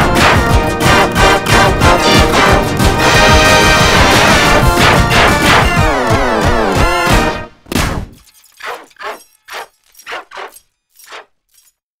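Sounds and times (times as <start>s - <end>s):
pitch-shifted cartoon dog barks: 8.6s - 11.2s.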